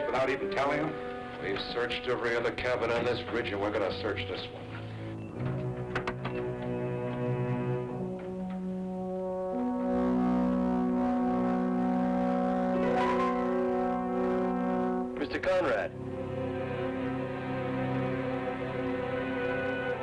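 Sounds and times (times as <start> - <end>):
brass chords film score: 0.0 - 20.0.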